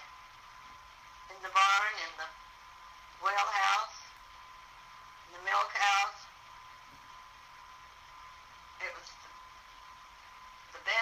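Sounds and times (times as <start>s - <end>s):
background hiss: 0.0s - 11.0s
person speaking: 3.2s - 4.2s, 5.3s - 6.4s, 10.7s - 11.0s.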